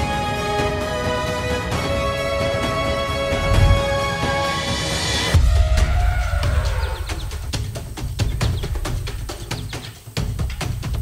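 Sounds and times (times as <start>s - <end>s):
deep bass with falling tone: 3.2s - 4.0s.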